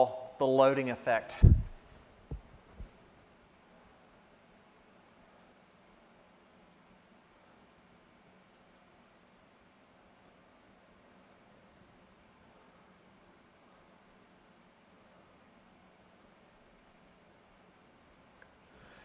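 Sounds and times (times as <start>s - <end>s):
marker writing on whiteboard: 2.3s - 18.7s.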